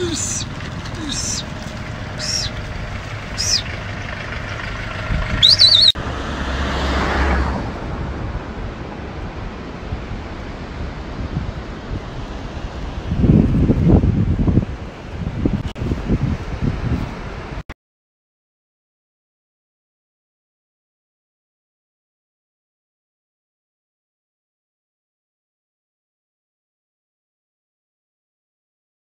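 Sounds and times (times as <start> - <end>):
wind gusts buffeting microphone: 0.0 - 6.0, 7.5 - 17.6
motorcycle ride wind and road noise: 0.0 - 17.6
short high chirps: 2.2 - 2.6, 3.4 - 3.7, 5.4 - 6.0.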